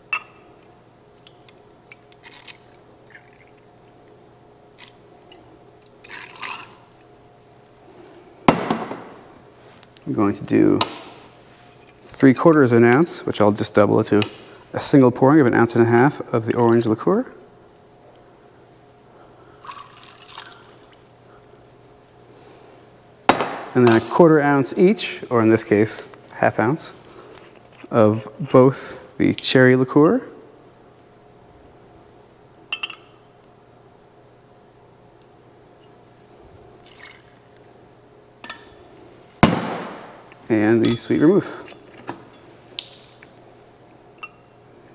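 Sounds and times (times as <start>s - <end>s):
glass bottle clinking: 32.7s - 33.2s, 44.2s - 44.5s.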